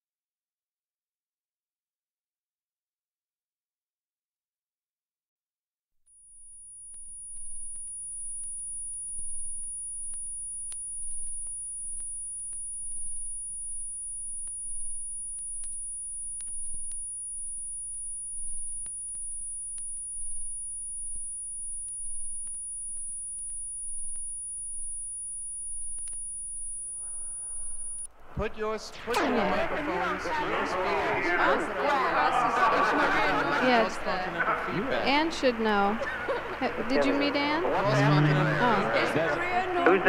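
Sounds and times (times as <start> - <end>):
high-pitched whine: 6.4 - 28.1
low rumble and hum: 6.6 - 28.4
faint clicks: 6.8 - 28.1.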